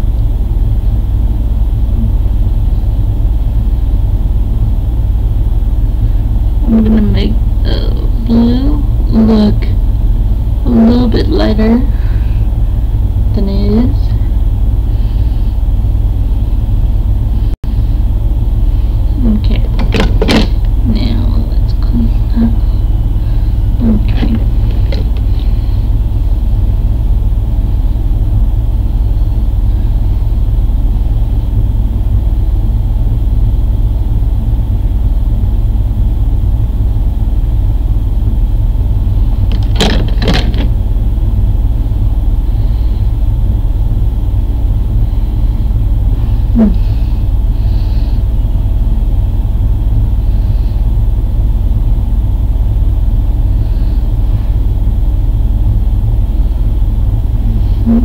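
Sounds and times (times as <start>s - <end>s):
steady low rumble: 0.0s - 58.0s.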